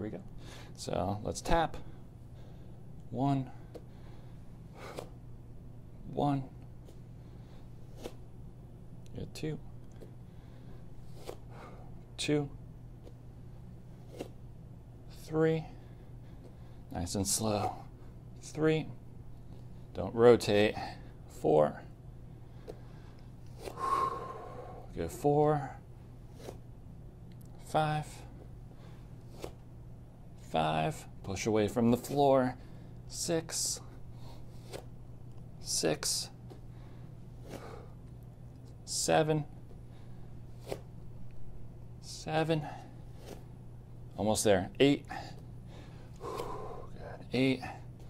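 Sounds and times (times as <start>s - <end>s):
faint low hum: 0.0s - 48.0s
man breathing hard: 3.6s - 5.2s, 22.3s - 24.9s, 45.1s - 47.9s
man exhaling hard: 46.2s - 47.1s.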